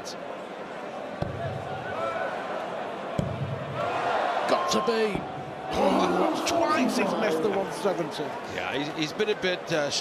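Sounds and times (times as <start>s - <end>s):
murmur of large crowd: 0.0s - 10.0s.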